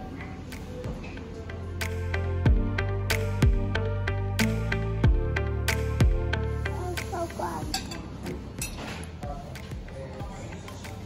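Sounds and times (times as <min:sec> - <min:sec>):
cutlery clinking against a plate: 0:07.7 - 0:09.2.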